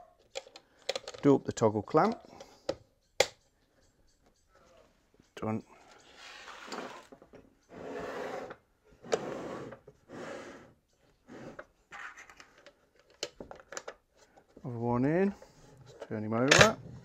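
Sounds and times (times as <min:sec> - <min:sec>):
wooden box scraping on wood: 0:06.1 - 0:12.1.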